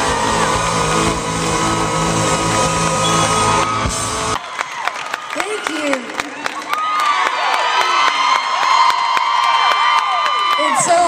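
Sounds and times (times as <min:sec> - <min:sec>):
crowd cheering and whooping: 0:00.0 - 0:11.0.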